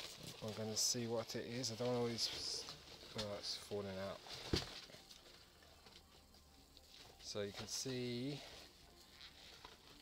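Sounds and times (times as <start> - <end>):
bubble wrap rustling: 0.0 - 10.0.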